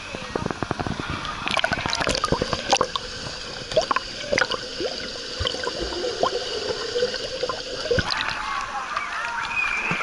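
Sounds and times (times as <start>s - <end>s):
muffled underwater hiss: 0.0s - 9.2s
bubble pops and gurgles: 0.8s - 8.4s
water splash: 1.4s - 8.6s.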